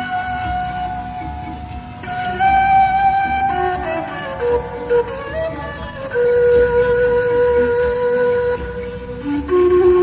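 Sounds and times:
flute melody: 0.0s - 10.0s.

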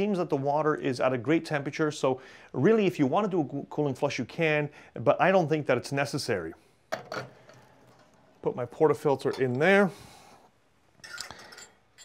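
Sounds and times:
glass cups clinking on metal: 11.0s - 12.0s.

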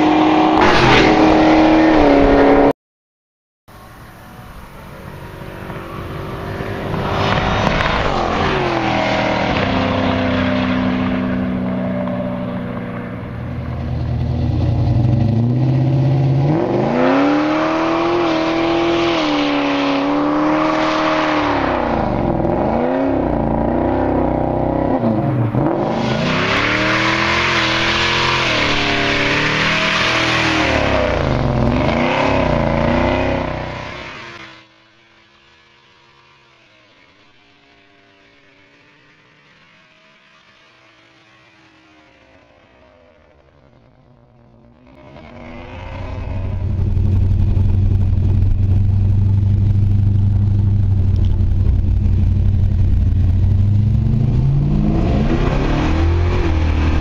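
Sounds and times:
engine revving: 0.0s - 2.7s, 4.9s - 34.7s, 42.2s - 57.0s
cars accelerating past: 4.1s - 34.8s, 44.6s - 57.0s.

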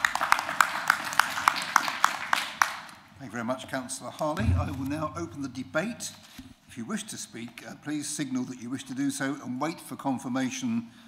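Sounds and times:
people clapping: 0.0s - 3.0s.

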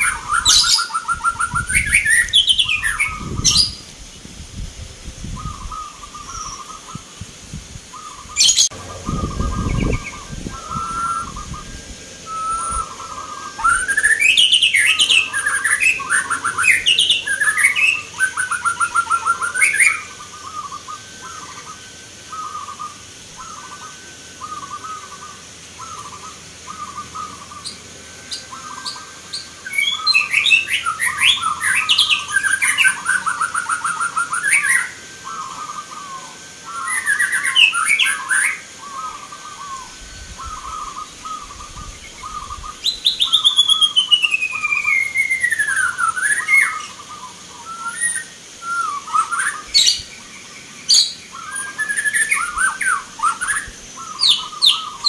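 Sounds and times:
doves cooing: 5.2s - 55.0s
falling whistled note: 8.0s - 41.6s.

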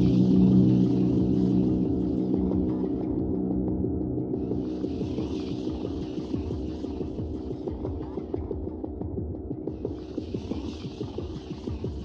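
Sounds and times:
ambient electronic music: 0.0s - 12.0s.

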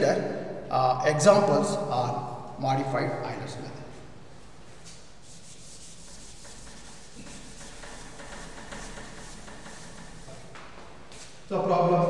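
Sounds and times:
duster rubbing chalkboard: 4.6s - 11.5s.

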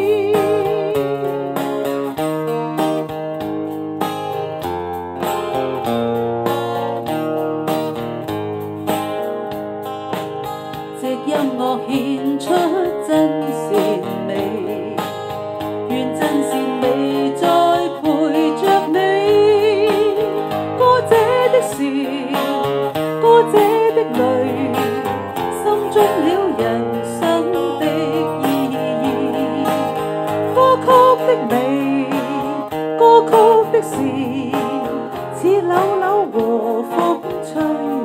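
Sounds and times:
woman singing pop ballad: 0.0s - 2.0s, 10.9s - 38.0s
guitar accompaniment: 0.0s - 38.0s.

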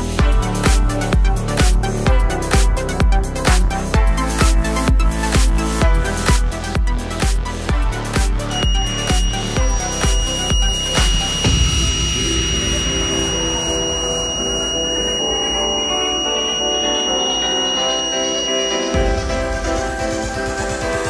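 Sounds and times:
electronic music with steady beat: 0.0s - 21.0s
high-pitched alarm buzzer tone: 7.9s - 19.6s.

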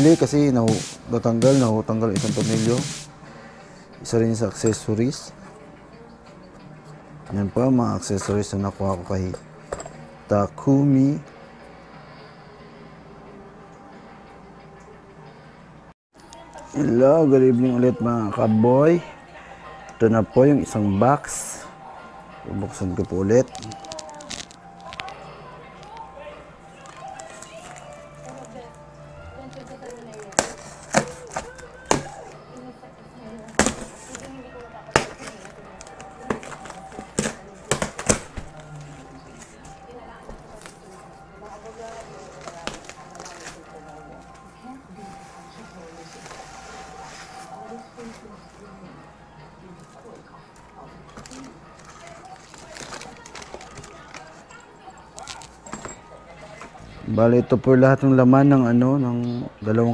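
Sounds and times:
plastic wrapping rustling: 0.0s - 3.1s, 23.2s - 25.4s, 26.7s - 28.8s, 29.4s - 32.4s, 33.3s - 48.6s, 51.1s - 56.7s
faint background music: 0.0s - 59.9s.

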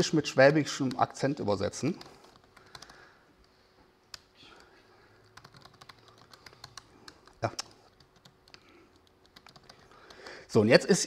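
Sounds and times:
laptop keyboard typing: 1.8s - 3.5s, 5.2s - 10.4s.

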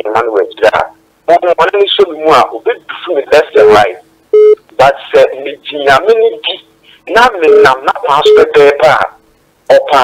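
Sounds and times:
short electronic beep: 4.4s - 4.6s
caller's voice over telephone: 4.8s - 10.0s.

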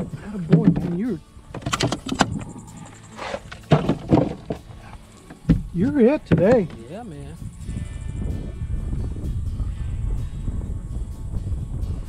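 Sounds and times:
knocks and scrapes on plastic cooler: 0.4s - 2.5s, 3.2s - 6.9s.

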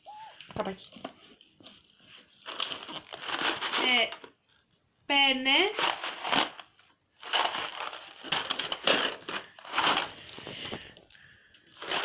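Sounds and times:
pasta rattling in cardboard box: 2.4s - 4.3s, 5.6s - 11.0s, 11.7s - 12.0s.

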